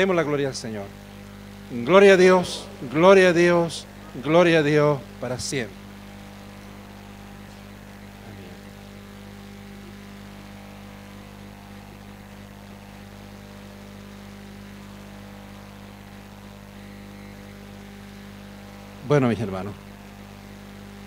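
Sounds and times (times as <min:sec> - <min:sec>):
electrical mains hum: 0:00.0 - 0:21.0
sound system hiss: 0:00.0 - 0:21.0.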